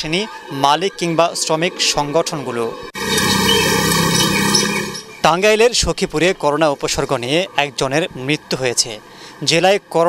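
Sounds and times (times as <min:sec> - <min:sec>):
motorcycles riding past: 0:03.0 - 0:05.2.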